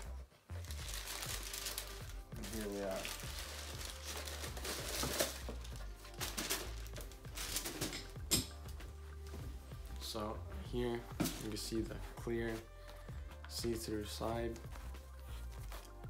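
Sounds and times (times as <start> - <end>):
tissue paper crinkling: 0.6 - 8.0.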